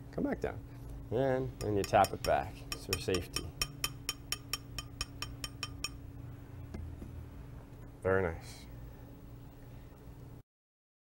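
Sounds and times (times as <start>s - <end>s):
low hum: 0.6s - 10.4s
metal opener tapping on glass: 1.6s - 6.0s.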